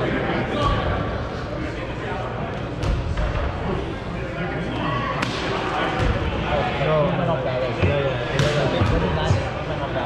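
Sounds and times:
indistinct chatter: 0:00.0 - 0:10.0
balls bouncing on wooden floor: 0:07.8 - 0:09.6.

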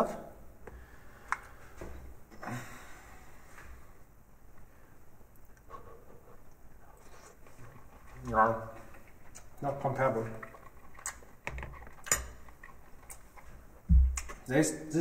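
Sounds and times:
soft eating noises: 0:03.3 - 0:15.0.

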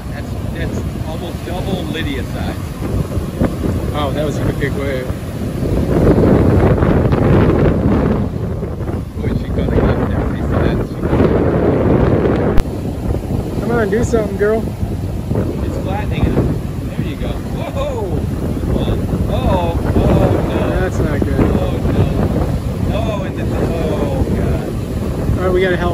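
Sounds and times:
breaking surf: 0:00.0 - 0:25.9
wind buffeting microphone: 0:00.0 - 0:25.9.

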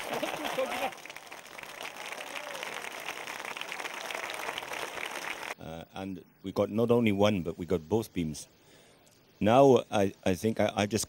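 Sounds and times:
crowd applauding: 0:00.0 - 0:05.6.

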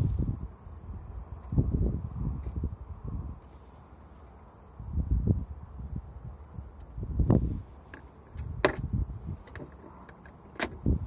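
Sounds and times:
eagle knocking and scuffing on car: 0:07.9 - 0:10.9.

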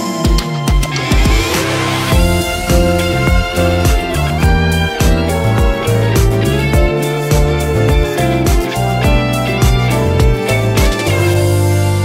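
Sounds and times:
steady drum beat: 0:00.0 - 0:11.5
instrumental pop ballad backing track: 0:00.0 - 0:12.0.

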